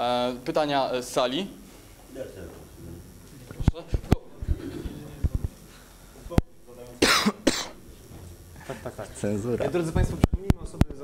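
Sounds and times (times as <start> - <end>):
person coughing: 7.0 - 7.8.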